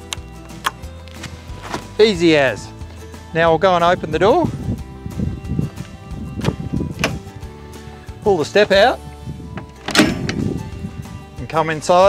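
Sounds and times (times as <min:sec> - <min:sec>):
background music: 0:00.0 - 0:12.0
door latch clicks: 0:07.0 - 0:07.2, 0:09.6 - 0:10.4.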